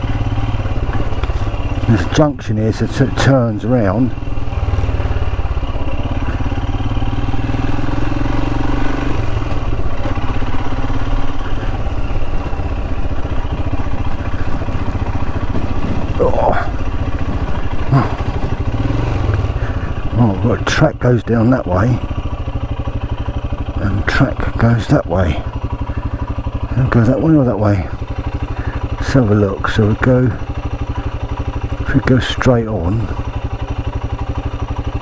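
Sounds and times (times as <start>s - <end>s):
motorcycle engine running: 0.0s - 35.0s.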